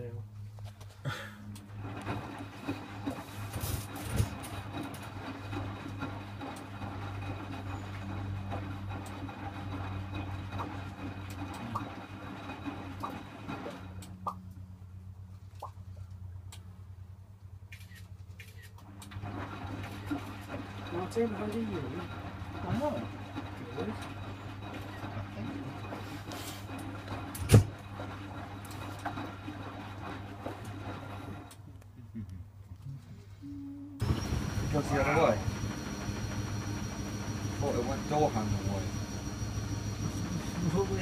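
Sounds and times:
motor hum: 0:00.8 - 0:16.2, 0:18.6 - 0:31.6, 0:33.9 - 0:41.0
laundry clunks: 0:01.7 - 0:14.0, 0:22.1 - 0:31.5
washing machine drum tumbling: 0:01.7 - 0:14.4, 0:19.2 - 0:31.5, 0:34.0 - 0:41.0.

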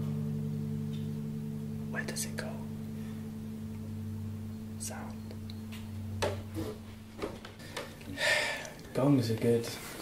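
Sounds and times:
gong ringing: 0:00.0 - 0:08.5.

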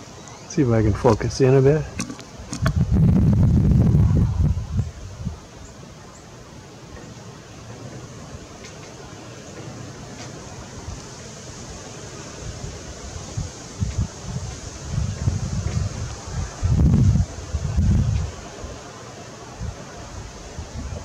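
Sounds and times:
wind buffeting microphone: 0:00.0 - 0:05.8, 0:06.9 - 0:21.0.

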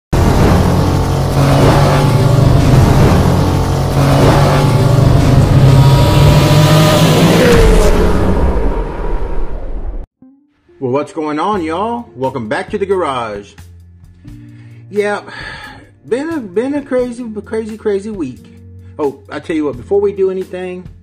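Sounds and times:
car engine running hard: 0:00.2 - 0:09.6.

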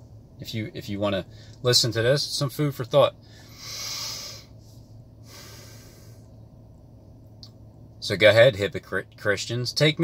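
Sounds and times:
faint low hum: 0:00.0 - 0:10.0
man breathing: 0:01.3 - 0:01.6, 0:03.2 - 0:06.4.

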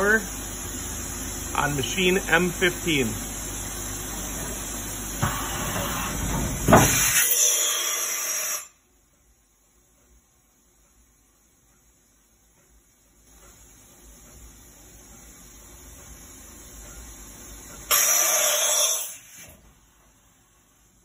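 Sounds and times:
low mechanical hum: 0:00.0 - 0:21.0
loud hissing rush: 0:01.4 - 0:03.3.

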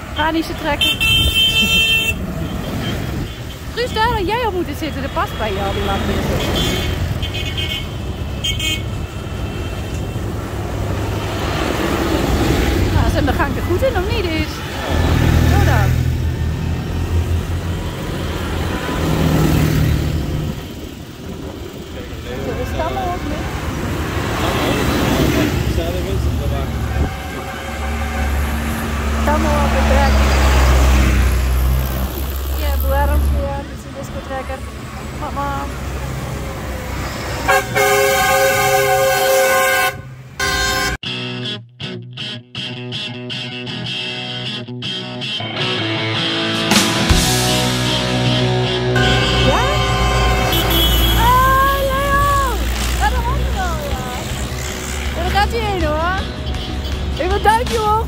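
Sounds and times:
tractor diesel engines rumbling: 0:00.0 - 0:41.0, 0:46.7 - 0:58.0
multi-tone horn blast: 0:00.8 - 0:03.0, 0:26.4 - 0:30.3, 0:37.4 - 0:41.1, 0:46.8 - 0:52.2
loud rock music: 0:41.0 - 0:50.5.

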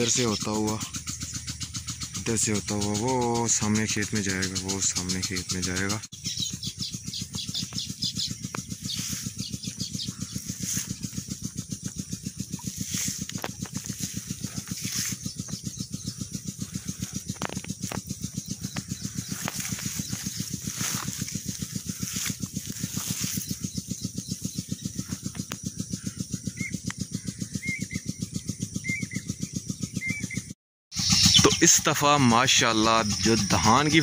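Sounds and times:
diesel engine thudding: 0:00.0 - 0:30.4
small chirps: 0:00.0 - 0:34.0.

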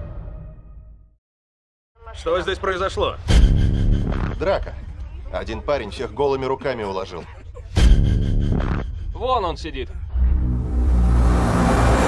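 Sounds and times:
deep bass drone: 0:10.0 - 0:12.0
noisy rising swell: 0:10.1 - 0:12.0.

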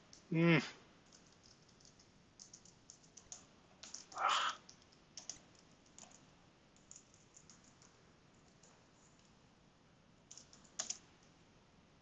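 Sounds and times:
computer keyboard typing: 0:01.0 - 0:09.4, 0:10.3 - 0:11.3.

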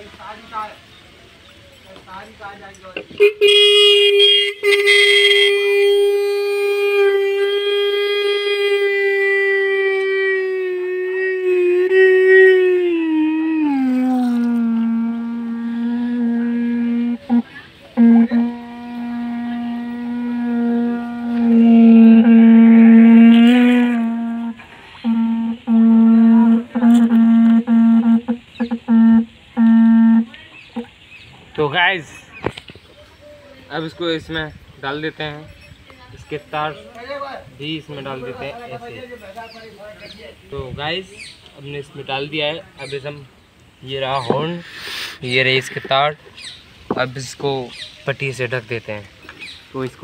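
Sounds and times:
electric disc horn sounding: 0:03.2 - 0:06.4, 0:11.2 - 0:30.9.

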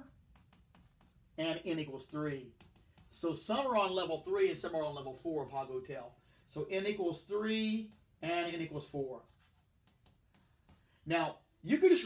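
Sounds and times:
chalk scratching on chalkboard: 0:00.0 - 0:04.7, 0:06.6 - 0:11.2.

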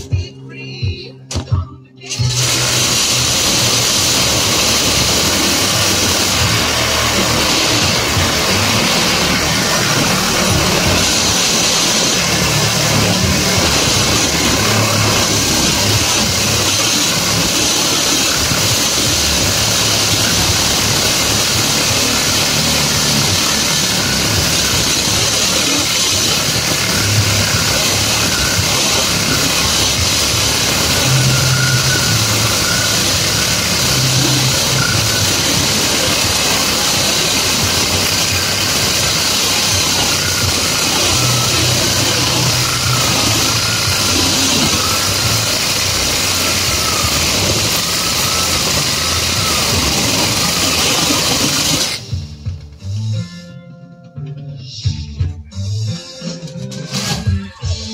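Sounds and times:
cordless power tool cutting wire: 0:02.1 - 0:52.2.

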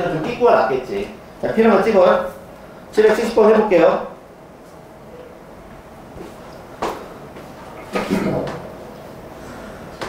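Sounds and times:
faint classroom room sound: 0:00.0 - 0:10.0.

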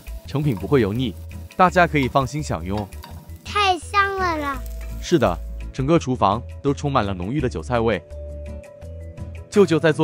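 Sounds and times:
background music: 0:00.0 - 0:10.0
high-pitched child-like voice: 0:03.4 - 0:04.7.

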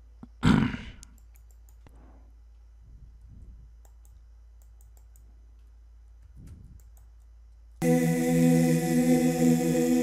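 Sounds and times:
low steady hum: 0:00.0 - 0:10.0
computer mouse clicks: 0:01.0 - 0:02.0, 0:03.8 - 0:05.7, 0:06.4 - 0:07.3
sung vocal track playing: 0:07.8 - 0:10.0.

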